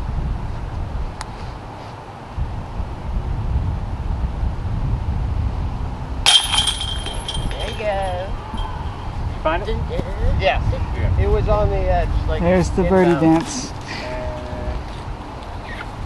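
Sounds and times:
wind rumbling on microphone: 0.0s - 16.0s
disc striking metal basket: 6.2s - 9.0s
chains jingling: 6.3s - 9.0s.

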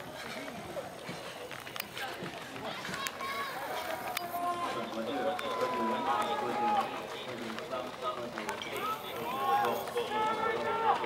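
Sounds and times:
spectators shouting encouragement: 2.8s - 7.2s, 8.8s - 11.0s.

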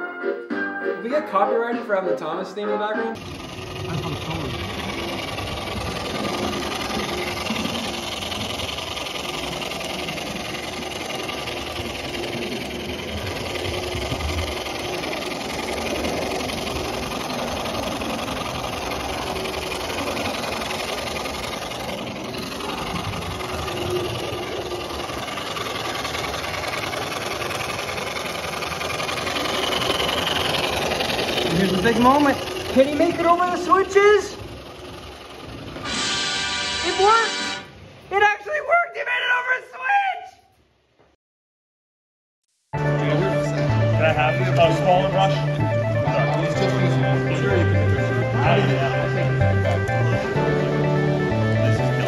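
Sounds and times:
model tram running on rails: 1.3s - 39.4s, 42.8s - 52.0s.

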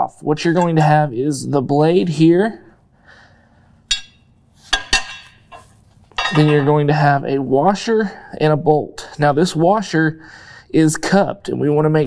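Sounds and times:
metal hardware clinking: 0.6s - 0.9s, 3.9s - 6.7s.

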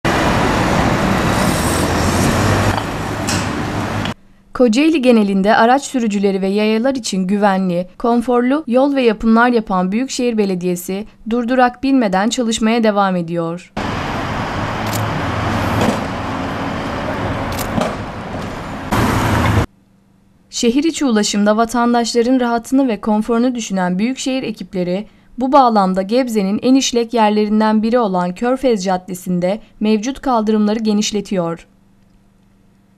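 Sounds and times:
heavy engine rumbling: 0.0s - 4.2s, 13.8s - 19.7s
road traffic: 0.0s - 4.2s, 13.8s - 19.7s
vehicles passing: 0.0s - 4.2s, 13.8s - 19.7s
sharp knocks: 2.7s - 3.6s.

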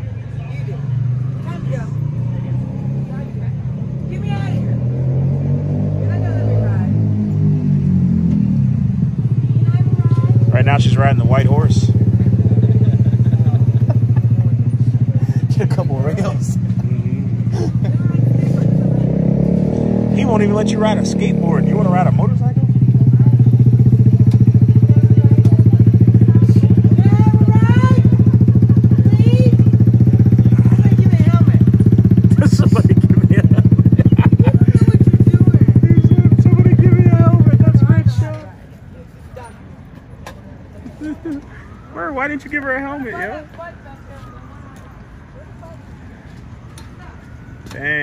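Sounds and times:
motorcycle engine idling: 7.8s - 38.6s
people calling out: 23.0s - 38.5s.

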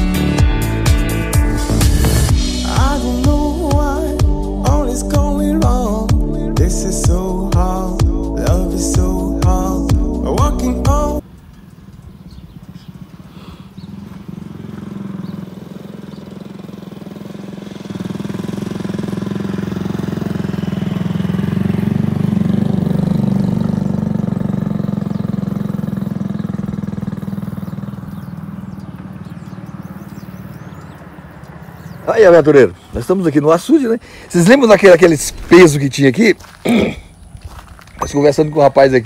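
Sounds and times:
small motorcycle engine running: 11.2s - 32.7s.

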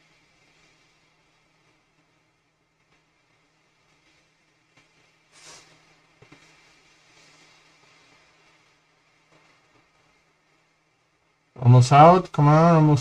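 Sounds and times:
low steady hum: 0.0s - 13.0s
soft hiss: 0.0s - 13.0s.

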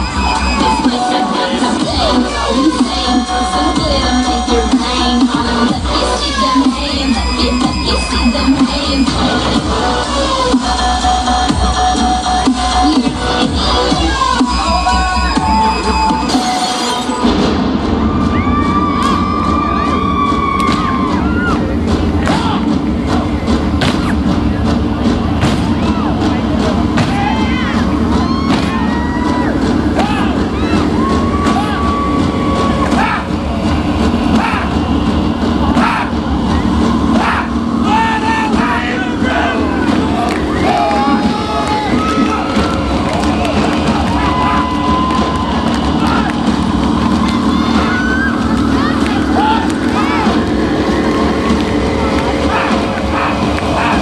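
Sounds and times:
crowd shouting and screaming: 0.0s - 10.6s, 12.2s - 54.0s
loud music: 0.0s - 54.0s
scattered clapping: 22.2s - 24.4s, 39.9s - 54.0s.

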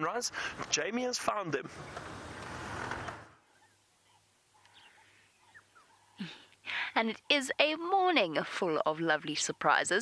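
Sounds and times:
vehicle engine and road noise: 0.0s - 6.2s
outdoor ambience: 0.0s - 10.0s.

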